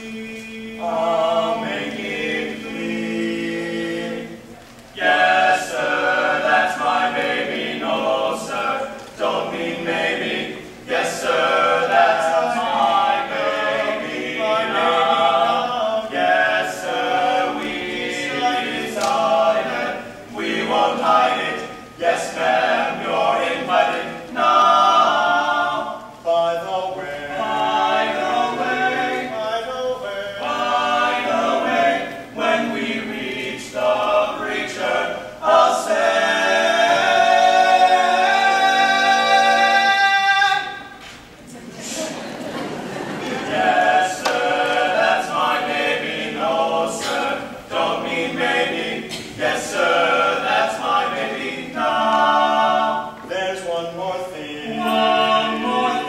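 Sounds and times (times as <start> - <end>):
male quartet singing a cappella: 0.0 - 41.0, 41.8 - 56.0.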